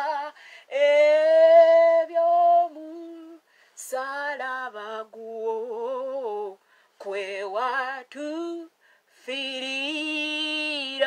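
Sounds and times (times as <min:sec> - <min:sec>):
woman singing unaccompanied: 0:00.0 - 0:11.0
woman breathing: 0:00.3 - 0:00.7, 0:03.4 - 0:03.8, 0:06.6 - 0:07.0, 0:08.7 - 0:09.2.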